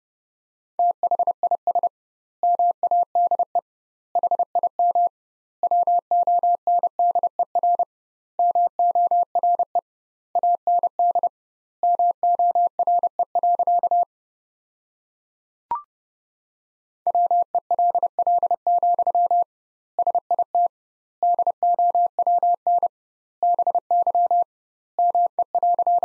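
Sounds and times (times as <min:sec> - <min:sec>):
morse code beeps: 0:21.3 - 0:26.0.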